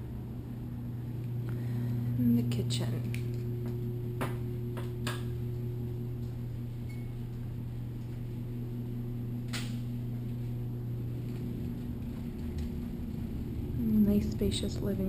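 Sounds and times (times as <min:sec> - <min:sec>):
steady low hum: 0:00.0 - 0:15.0.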